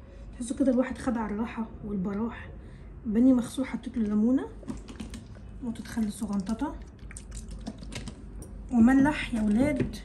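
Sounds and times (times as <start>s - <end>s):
liquid trickling onto meat: 6.1s - 7.9s.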